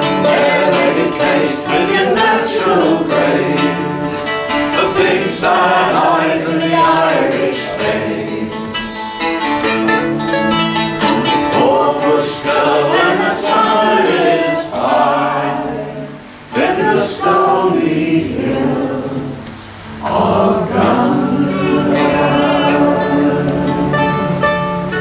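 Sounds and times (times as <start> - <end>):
strummed mandolin: 0.0 - 15.3, 19.8 - 25.0
acoustic guitar: 0.0 - 25.0
man and woman singing folk song: 0.0 - 25.0.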